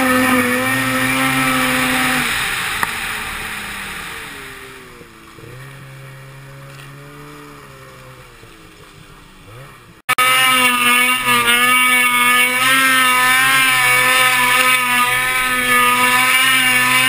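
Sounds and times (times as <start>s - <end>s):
snowmobile engine: 0.0s - 17.0s
snowmobile track noise: 0.0s - 17.0s.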